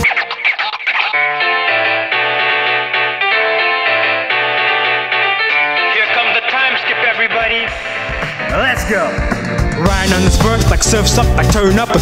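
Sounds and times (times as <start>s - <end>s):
electric bass guitar notes: 7.3s - 12.0s.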